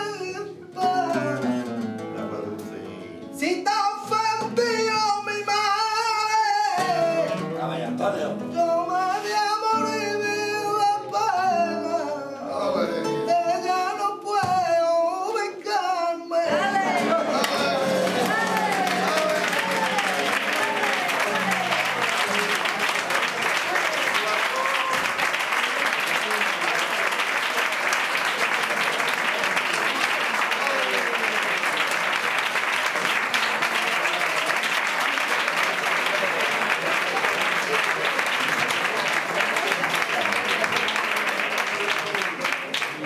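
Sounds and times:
voices calling out: 16.5 - 25.0
audience applause: 16.5 - 43.0.

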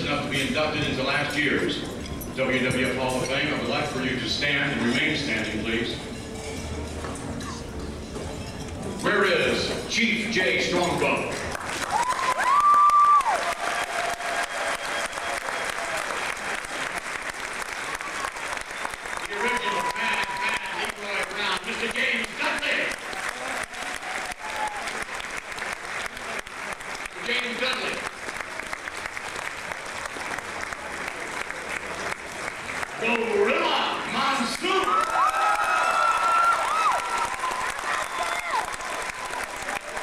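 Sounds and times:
audience clapping: 10.9 - 40.0.

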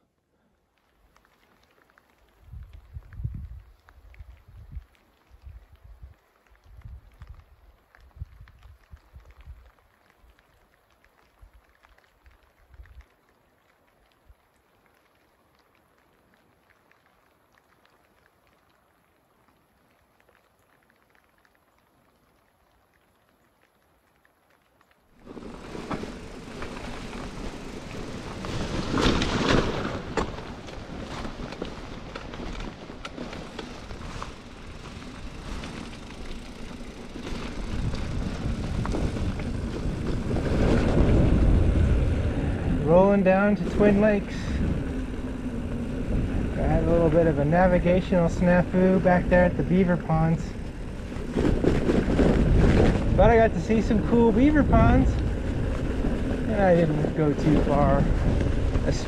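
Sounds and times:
bike tyre noise: 0.3 - 59.0
wind rush on microphone: 2.4 - 9.7, 25.2 - 59.0
bike rattling: 25.2 - 59.0.

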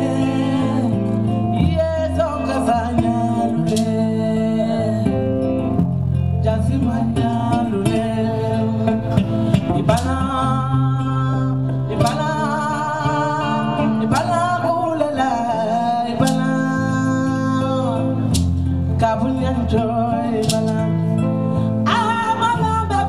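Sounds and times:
woman singing: 0.0 - 5.6, 6.4 - 23.0
electric guitar: 0.0 - 23.0
low steady bass line: 0.0 - 23.0.

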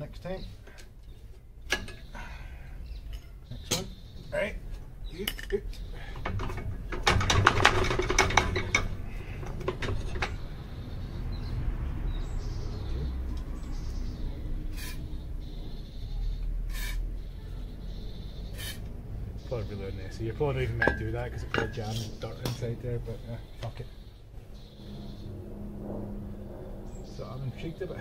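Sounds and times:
low steady rumble: 1.5 - 28.0.

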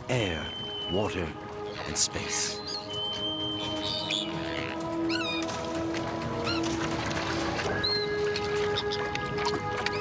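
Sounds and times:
background music of held tones: 0.0 - 10.0
terns calling: 0.1 - 6.9, 7.6 - 10.0.

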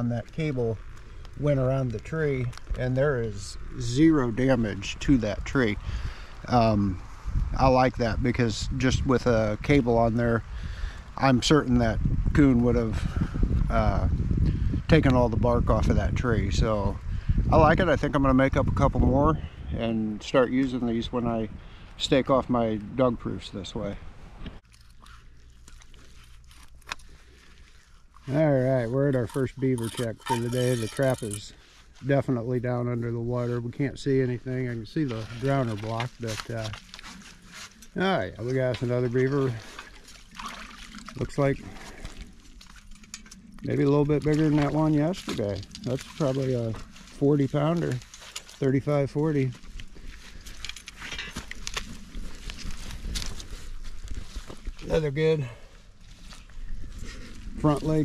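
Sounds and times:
sticks crunching and snapping: 24.6 - 28.2, 47.8 - 48.7, 49.6 - 54.8
rustling in grass: 44.4 - 55.2.

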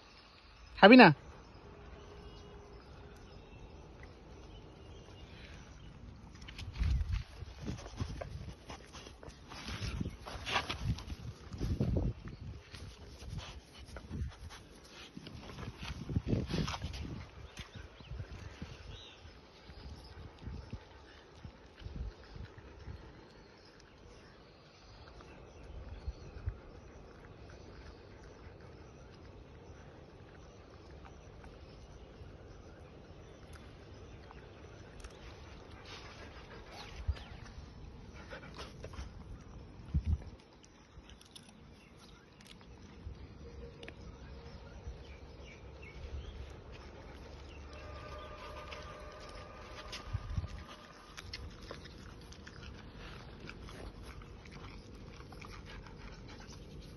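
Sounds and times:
dog making soft noises: 34.3 - 39.6, 46.4 - 56.9.

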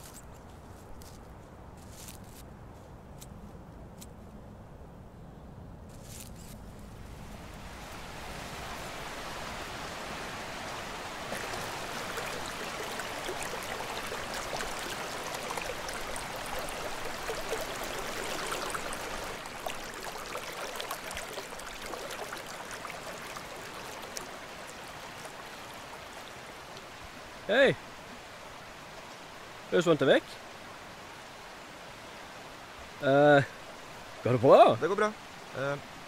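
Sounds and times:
river water running over stones: 6.0 - 36.0.

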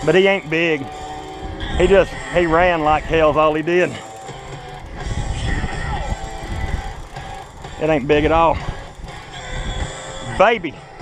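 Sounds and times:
hard rock from a radio: 0.0 - 11.0.

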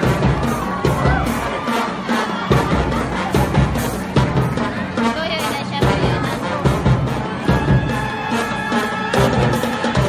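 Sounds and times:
crowd cheering: 0.0 - 10.0
drum and lyre marching band: 0.0 - 10.0.

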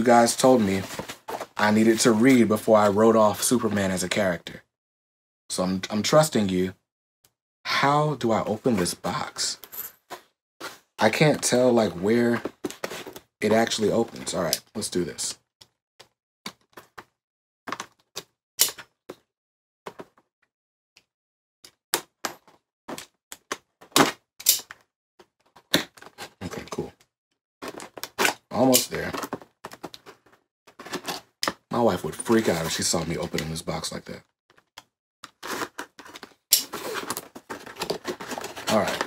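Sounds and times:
blade cutting cardboard box: 35.3 - 39.0.

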